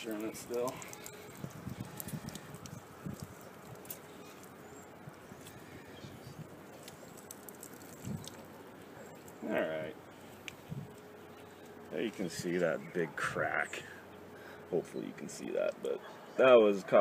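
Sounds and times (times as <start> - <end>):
faint metal clicks and knocks: 0.0 - 4.6.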